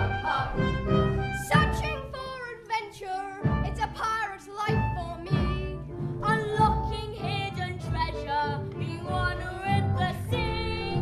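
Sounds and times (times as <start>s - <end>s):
live band accompaniment: 0.0s - 2.0s.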